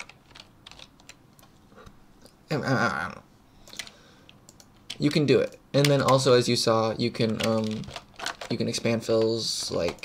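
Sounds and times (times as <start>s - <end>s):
keyboard keys clicking: 0.0s - 1.5s, 7.2s - 10.0s.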